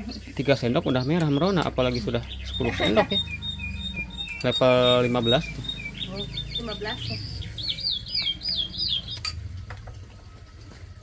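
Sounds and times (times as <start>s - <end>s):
songbird singing: 0.0s - 9.7s.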